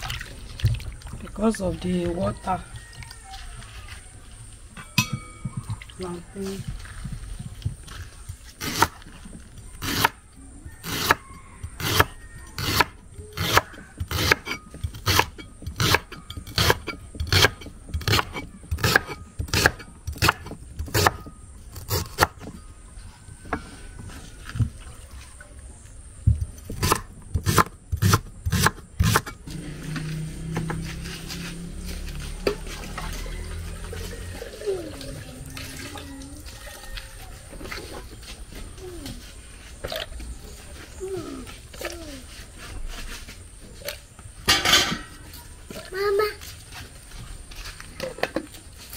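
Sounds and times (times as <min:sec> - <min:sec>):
knife chopping on wooden board: 0:11.8 - 0:21.2.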